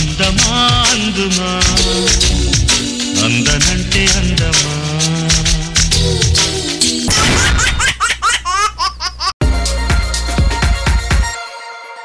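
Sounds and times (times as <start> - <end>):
music: 0.0 - 7.1, 9.4 - 12.0
cartoon laughter sound effect: 7.1 - 9.4.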